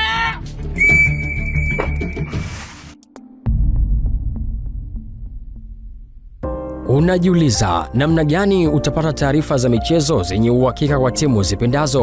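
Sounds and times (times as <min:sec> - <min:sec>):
deep bass hit: 0:03.4 - 0:06.9.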